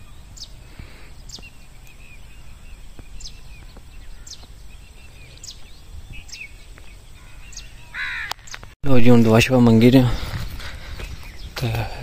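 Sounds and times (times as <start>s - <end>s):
short high bird calls: 0.0s - 8.7s
harsh long bird call: 7.1s - 8.6s.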